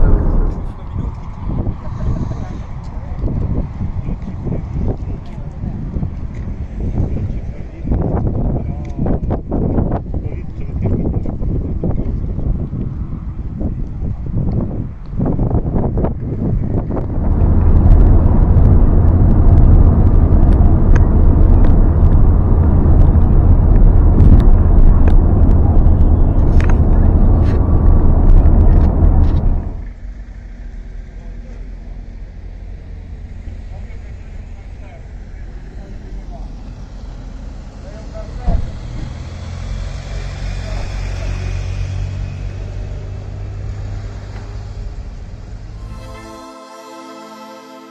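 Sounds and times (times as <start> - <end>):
faint voices: 0.0 - 3.4
wind buffeting microphone: 0.0 - 29.9.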